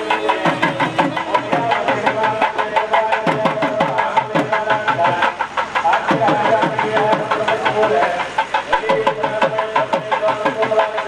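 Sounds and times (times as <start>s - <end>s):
rapid drum strokes: 0.0s - 11.0s.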